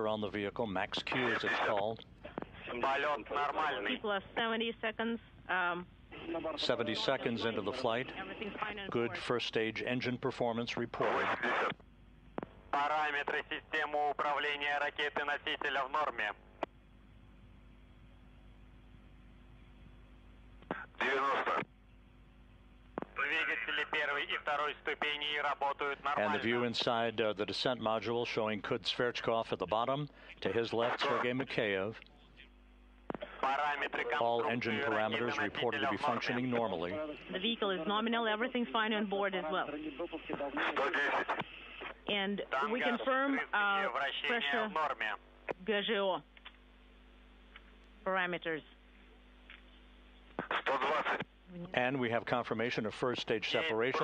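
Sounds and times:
person speaking over broadcast: 0.0 - 4.5, 6.2 - 11.8, 12.7 - 16.4, 20.7 - 21.7, 23.0 - 32.5, 33.1 - 46.2, 50.4 - 54.0
click: 46.4 - 46.6.

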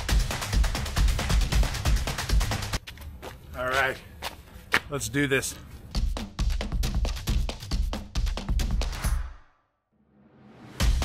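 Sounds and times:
man speaking: 3.5 - 4.1, 4.8 - 5.7.

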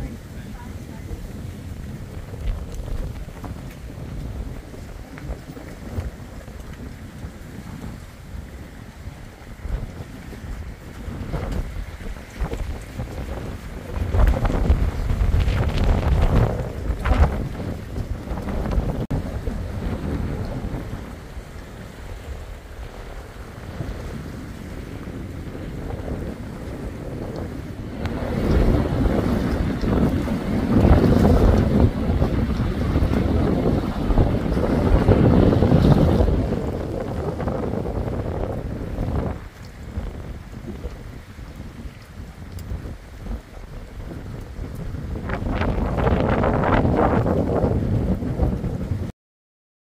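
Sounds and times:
wind buffeting microphone: 0.0 - 49.1.

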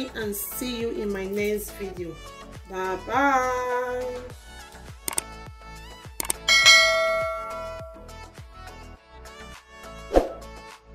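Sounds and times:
background music: 0.0 - 10.9
quick clicks: 5.1 - 5.3, 6.2 - 6.5
notification bell ding: 6.4 - 8.1.

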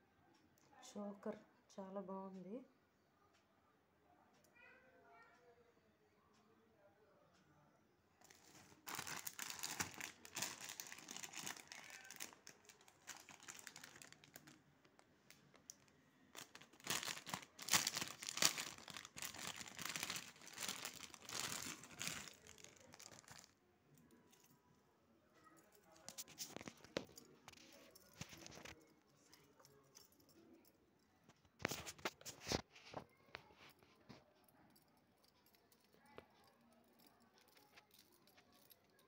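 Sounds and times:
packaging crinkling: 8.2 - 23.6, 26.0 - 28.8.

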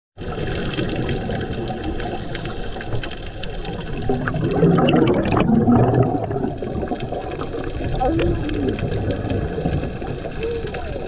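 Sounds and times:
crackling clicks: 0.2 - 11.0
diver exhaling bubbles: 3.6 - 11.0.

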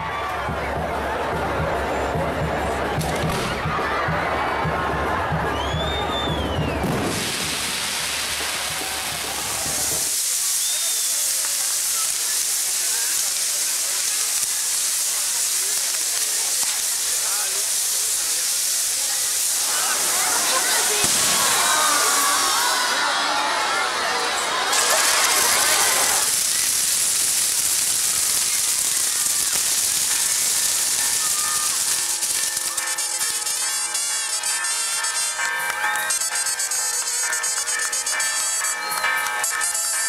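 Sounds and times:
crowd voices: 0.0 - 40.0
fireworks hissing: 5.7 - 40.0.

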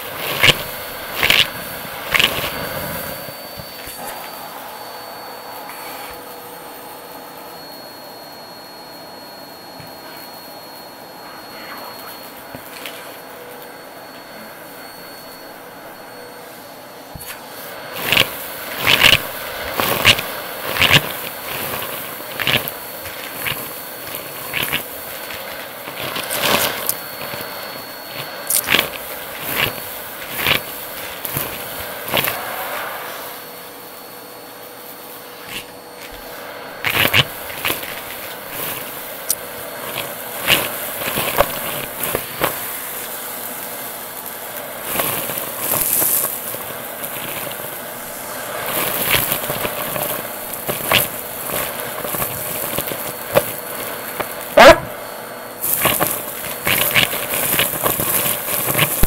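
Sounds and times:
grit crunching up vacuum tube: 0.0 - 4.4, 17.1 - 32.7, 35.2 - 59.0
vacuum cleaner motor hum: 0.0 - 59.0.

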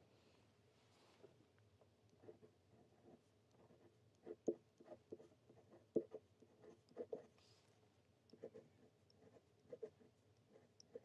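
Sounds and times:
pen nib scratching on paper: 2.1 - 7.6, 8.3 - 11.0.

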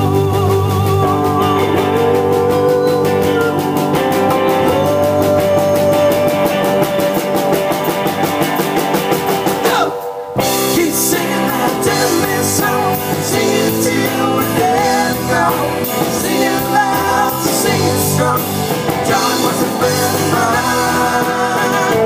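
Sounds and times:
electric guitar lead line: 0.0 - 22.0
rock band playing live: 0.0 - 22.0.

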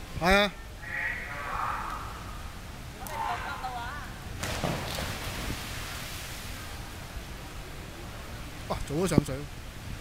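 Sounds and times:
distant crowd voices: 0.5 - 4.4
high voices calling out: 0.7 - 4.0.

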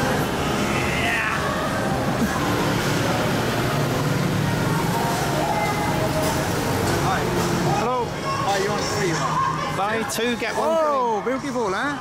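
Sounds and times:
traffic rumble: 0.0 - 9.8.

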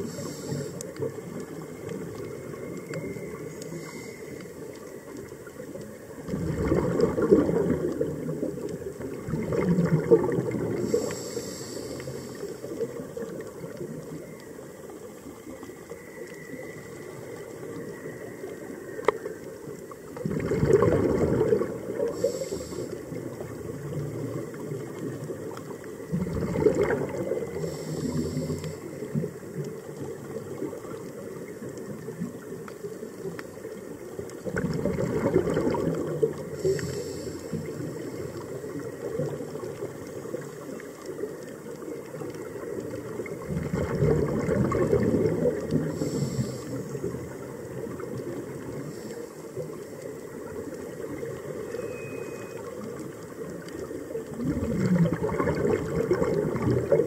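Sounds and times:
high hiss of inhaled air: 0.0 - 0.8, 10.8 - 12.7, 22.1 - 23.0, 27.6 - 28.9, 36.6 - 37.7, 46.0 - 46.9
low underwater background: 0.0 - 57.0
diver exhaling bubbles: 6.2 - 13.8, 20.2 - 24.9, 26.1 - 29.4, 34.4 - 38.4, 43.2 - 47.4, 54.3 - 57.0.

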